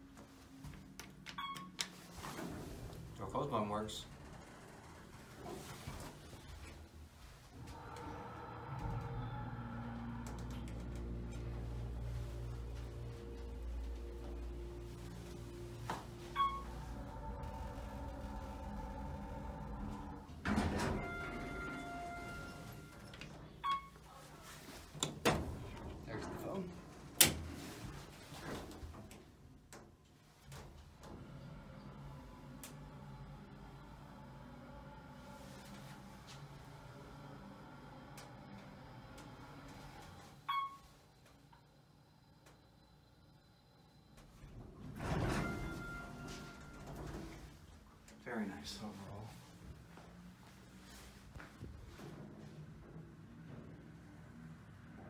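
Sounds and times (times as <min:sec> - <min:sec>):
elevator door sliding shut: 0:01.4 - 0:06.9, 0:07.6 - 0:24.0, 0:24.9 - 0:28.9, 0:30.4 - 0:40.8, 0:44.2 - 0:48.0
held electronic tone: 0:14.1 - 0:23.9
short beeps: 0:16.3 - 0:16.8, 0:40.5 - 0:40.9
short electronic beep: 0:16.4 - 0:16.8.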